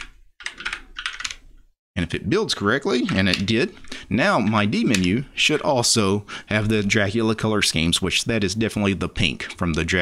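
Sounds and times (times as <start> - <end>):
computer keyboard typing: 0.0 - 1.4.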